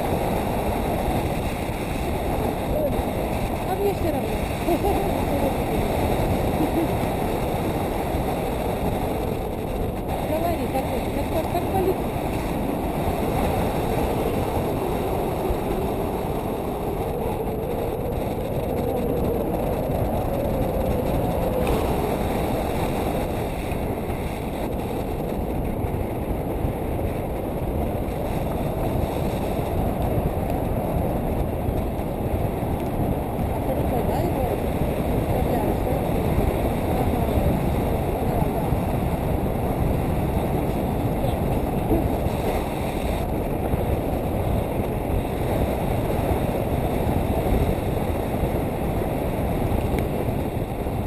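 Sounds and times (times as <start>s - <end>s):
wind rushing over microphone: 0.0s - 51.0s.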